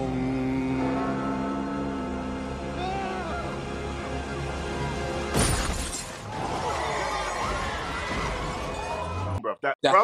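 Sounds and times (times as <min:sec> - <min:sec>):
tense dramatic music: 0:00.0 - 0:09.0
shattering crash: 0:05.3 - 0:08.8.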